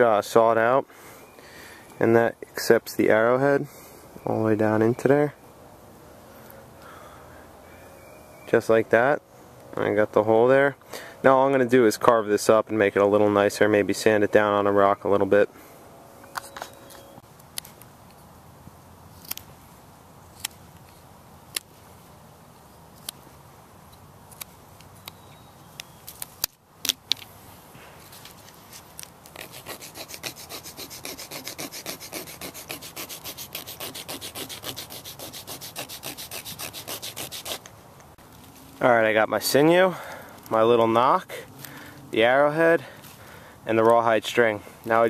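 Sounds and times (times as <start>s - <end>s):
wooden pendant scraping on stone: 28.1s - 37.7s.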